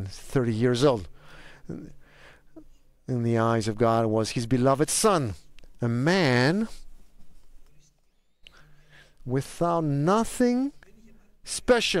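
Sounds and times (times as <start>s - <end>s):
faint breathing: 1.1s - 2.7s, 8.4s - 9.2s.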